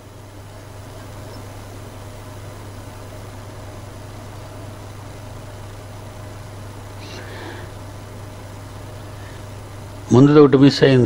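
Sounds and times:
steady low hum: 0.0s - 11.0s
even hiss: 6.9s - 11.0s.

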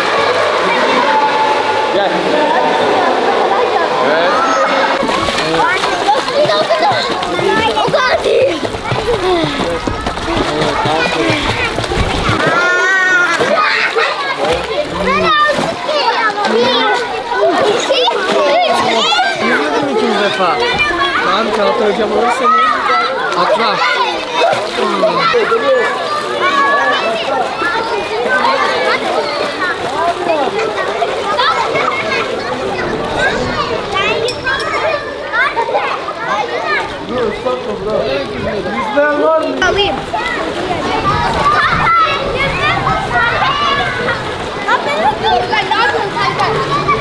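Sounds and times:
children calling and chattering: 0.0s - 47.0s.

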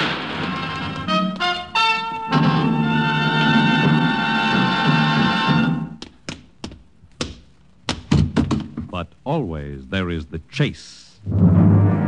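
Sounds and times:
orchestral music: 0.2s - 6.0s, 11.3s - 12.0s
sharp taps: 6.0s - 8.7s.

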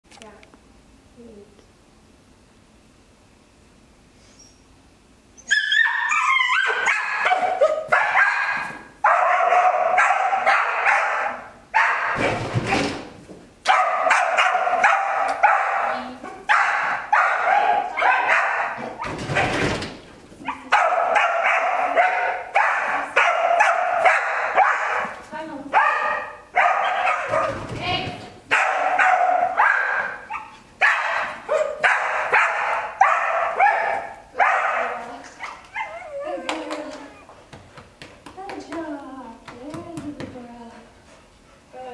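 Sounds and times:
dog barking and yipping: 5.5s - 12.2s, 13.7s - 19.6s, 20.5s - 25.2s, 25.8s - 27.7s, 28.5s - 36.2s.

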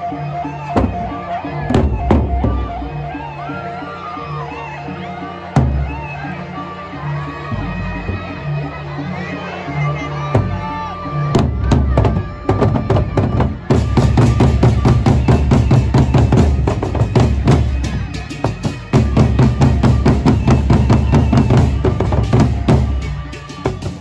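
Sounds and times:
barrel drums beaten fast: 0.8s - 2.6s, 11.4s - 24.0s.

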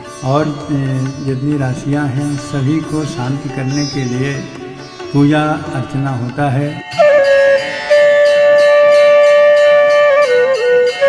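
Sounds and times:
wind instrument melody: 0.0s - 11.0s.

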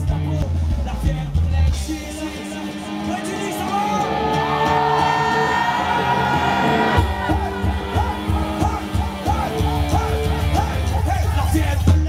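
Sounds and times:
live band over loudspeakers: 0.0s - 12.0s.

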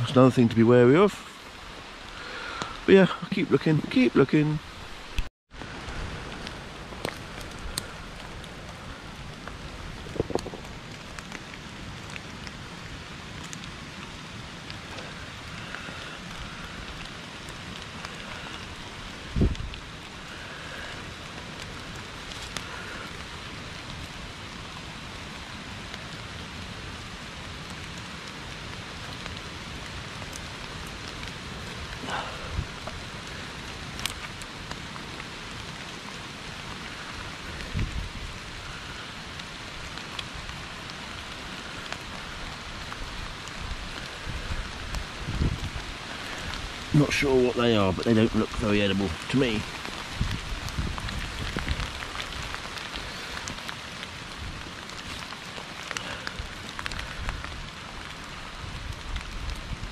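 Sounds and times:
rain falling on leaves: 0.0s - 59.9s.

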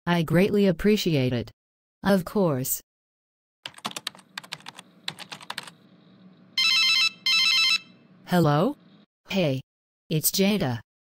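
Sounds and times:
keyboard typing clicks: 3.7s - 5.8s
telephone warbling ring: 6.6s - 8.0s.

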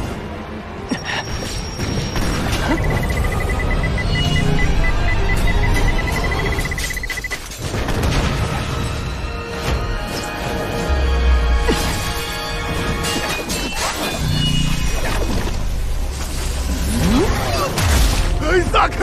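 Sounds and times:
dramatic background music: 0.0s - 19.0s
battle impacts and booms: 7.6s - 9.2s.

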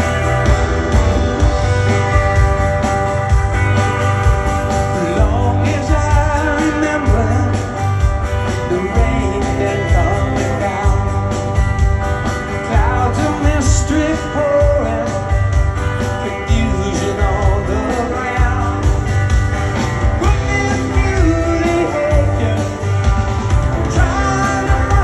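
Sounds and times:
bass guitar: 0.0s - 25.0s
electric guitar: 0.0s - 25.0s
steady drum beat: 0.0s - 25.0s
man singing lead: 4.8s - 11.5s, 12.6s - 15.4s, 16.0s - 19.1s, 20.1s - 23.1s, 23.8s - 25.0s.

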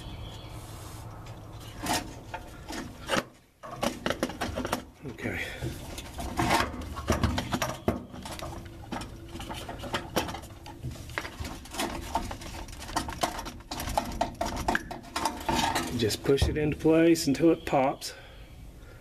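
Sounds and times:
handling rustling: 0.6s - 16.4s.

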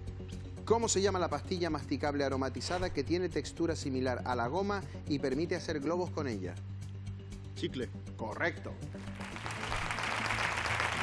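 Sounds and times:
background music: 0.0s - 11.0s
studio audience applause: 9.0s - 11.0s.

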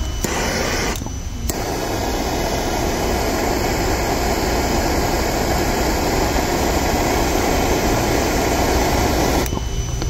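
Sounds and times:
tool blowing noise: 0.0s - 10.0s.

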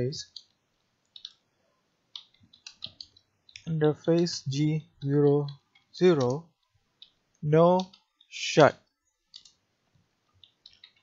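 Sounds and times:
faint keyboard keystrokes: 2.2s - 4.4s, 9.3s - 9.6s.

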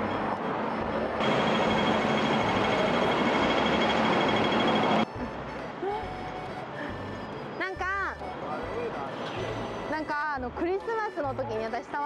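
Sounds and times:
passing vehicles hum: 0.0s - 12.0s
steady high whine: 0.8s - 5.0s.

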